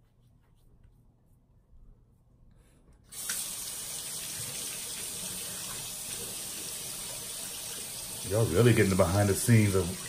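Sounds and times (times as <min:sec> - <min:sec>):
tap water running into sink: 0:03.1 - 0:10.0.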